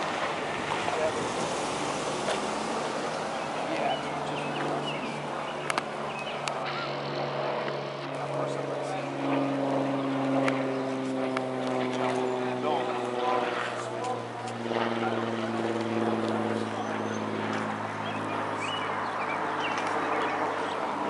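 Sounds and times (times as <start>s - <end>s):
onlookers' voices: 0.0s - 21.0s
steady low drone: 0.0s - 21.0s.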